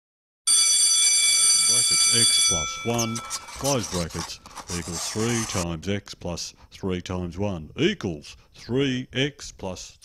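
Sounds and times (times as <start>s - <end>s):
school bell ringing: 0.5s - 4.3s.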